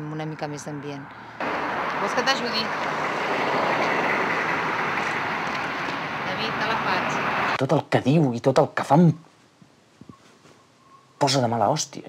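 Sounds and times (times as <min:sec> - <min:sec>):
road traffic passing: 0:00.0 - 0:07.6.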